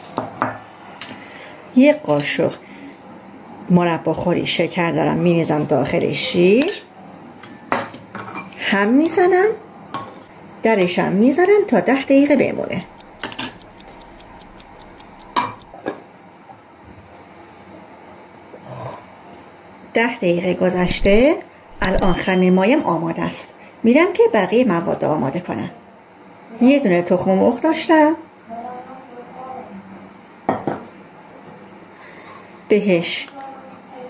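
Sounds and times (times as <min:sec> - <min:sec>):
loud clicks: 0:12.8 - 0:15.7, 0:20.8 - 0:22.3
clock ticking: 0:12.8 - 0:15.8, 0:20.8 - 0:22.9
china dishes clinking: 0:20.8 - 0:23.1.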